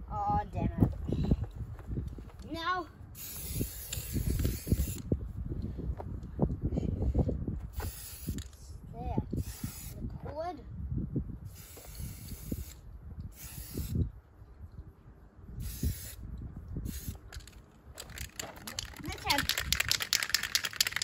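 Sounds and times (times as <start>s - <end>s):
spray can ball rattling: 3.2s - 5.0s, 7.8s - 8.5s, 16.9s - 21.0s
spray can hissing: 3.2s - 5.0s, 7.8s - 8.4s, 9.4s - 10.0s, 11.5s - 12.8s, 13.4s - 14.0s, 15.6s - 16.2s, 16.9s - 21.0s.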